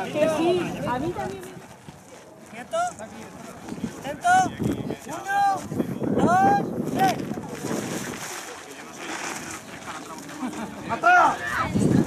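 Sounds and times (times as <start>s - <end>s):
people calling and talking: 0.0s - 12.0s.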